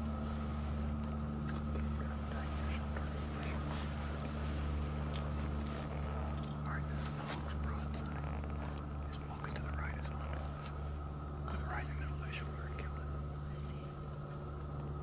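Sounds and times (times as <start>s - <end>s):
steady low hum: 0.0s - 15.0s
hushed whispering: 1.6s - 14.3s.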